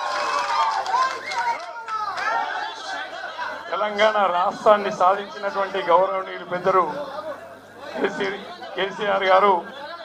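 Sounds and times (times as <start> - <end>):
man talking over loudspeaker: 3.7 - 7.2, 8.0 - 10.0.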